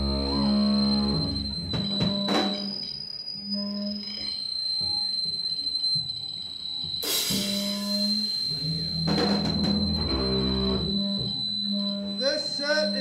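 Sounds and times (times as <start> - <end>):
amplifier hum: 0.0 - 13.0
high feedback whine: 0.0 - 13.0
drum and cymbal hits: 7.0 - 10.1.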